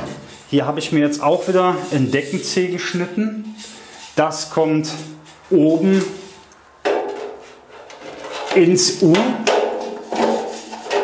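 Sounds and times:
metal profile scraping metal track: 9.8s - 11.0s.

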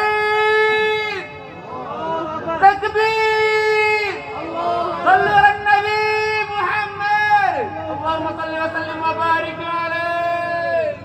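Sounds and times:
man chanting recitation: 0.0s - 11.0s.

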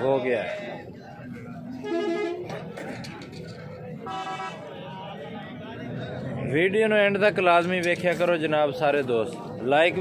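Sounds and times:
vehicle horn toot: 4.1s - 4.6s.

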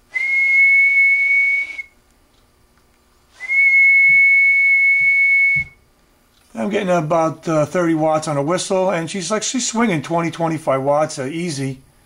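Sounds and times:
man whistling high note: 0.1s - 2.0s, 3.4s - 5.8s.

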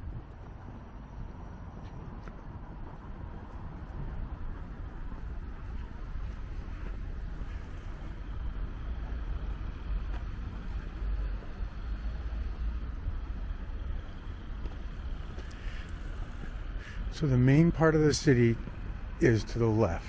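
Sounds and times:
distant traffic hum: 0.0s - 20.0s
wind buffeting microphone: 0.0s - 20.0s.

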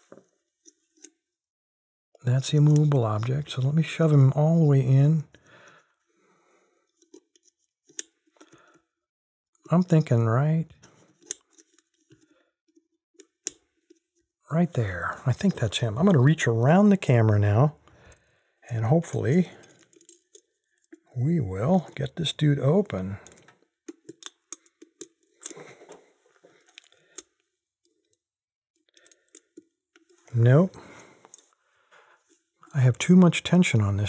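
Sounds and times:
lock pick clicks and scrapes: 6.9s - 8.5s, 10.9s - 14.0s, 19.6s - 21.1s, 23.2s - 25.6s.

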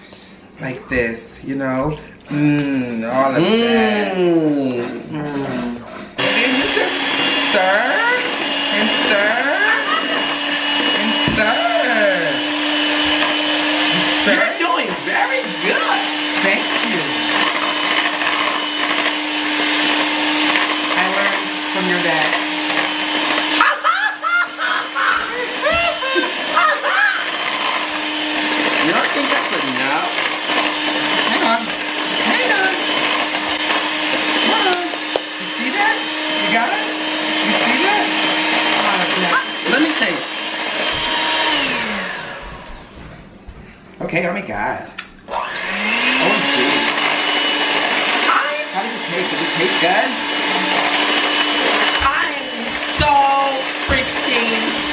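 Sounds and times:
electric hand mixer whisking batter: 1.0s - 43.0s, 45.2s - 54.9s.

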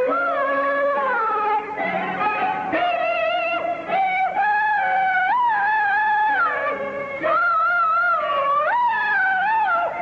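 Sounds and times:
male falsetto opera singing: 0.0s - 10.0s
opera accompaniment: 0.0s - 10.0s.

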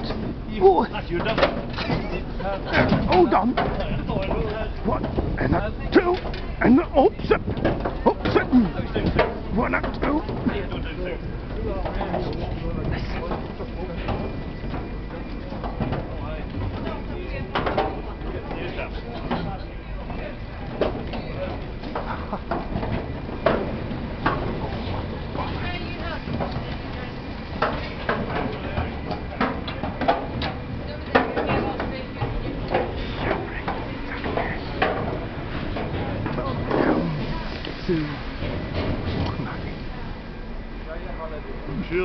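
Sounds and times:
indistinct voices: 0.0s - 23.4s, 24.5s - 42.0s.

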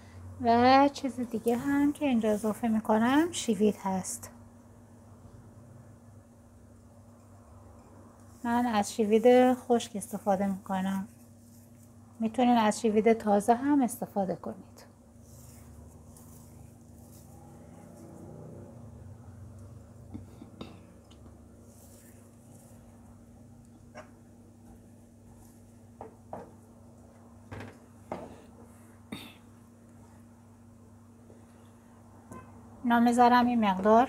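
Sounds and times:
low hum with hiss: 0.0s - 34.0s
woman speaking: 0.4s - 4.4s, 8.4s - 11.2s, 12.2s - 14.9s, 32.8s - 34.0s.

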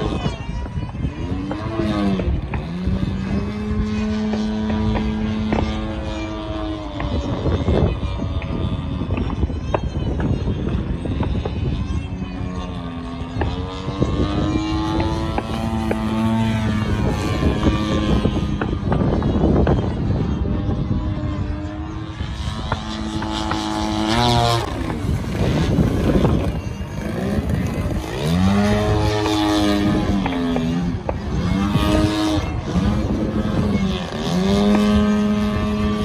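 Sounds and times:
model airplane engine and propeller: 0.0s - 36.0s.

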